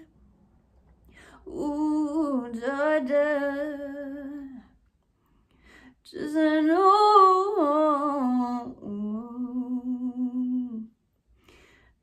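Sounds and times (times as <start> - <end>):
soft breath in: 5.2 - 6.0, 11.3 - 12.0.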